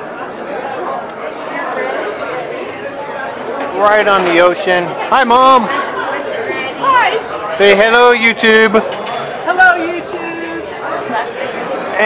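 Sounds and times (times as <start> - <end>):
crowd of diners chattering: 0.0 - 12.0.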